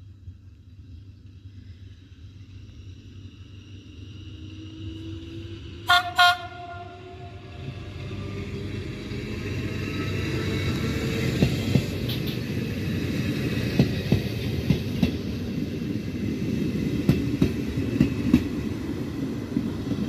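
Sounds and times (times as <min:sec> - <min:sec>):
train wheels on rails and motors: 0:00.0 - 0:20.0
train horn toots: 0:05.9 - 0:07.6.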